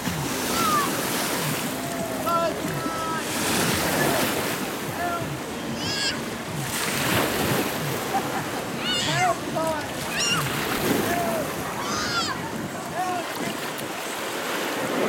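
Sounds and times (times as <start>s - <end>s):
water rushing and splashing: 0.0s - 15.0s
high-pitched shouts: 5.0s - 6.2s, 8.8s - 12.4s.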